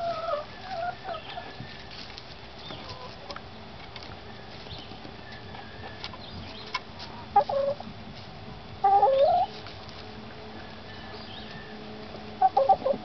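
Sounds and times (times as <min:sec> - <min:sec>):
hens clucking: 0:00.0 - 0:07.9, 0:08.8 - 0:13.0.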